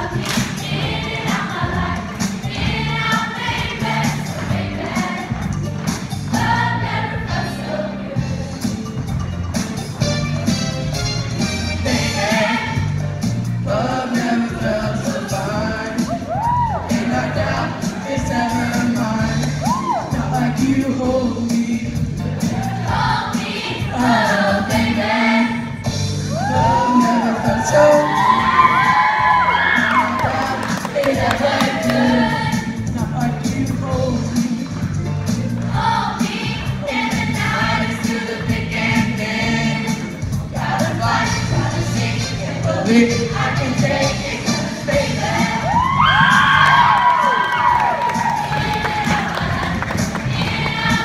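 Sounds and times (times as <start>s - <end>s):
choir singing: 0.0s - 5.4s, 6.3s - 8.3s, 11.8s - 13.0s, 22.6s - 25.7s, 26.7s - 32.8s, 35.7s - 45.9s, 48.4s - 51.0s
instrumental accompaniment with bass: 0.0s - 51.0s.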